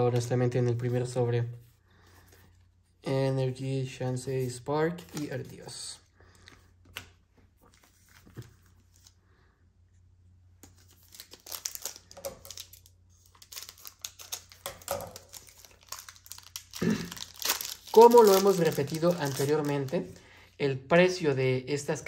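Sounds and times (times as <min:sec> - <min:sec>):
foil wrapper tearing and crinkling: 0:10.7 - 0:20.2.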